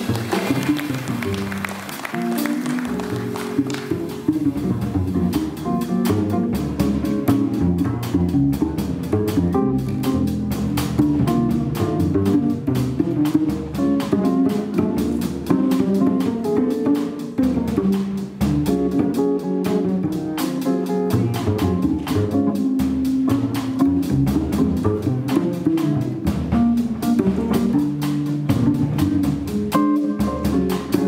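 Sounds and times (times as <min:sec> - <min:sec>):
plucked double bass: 0:00.0 - 0:31.0.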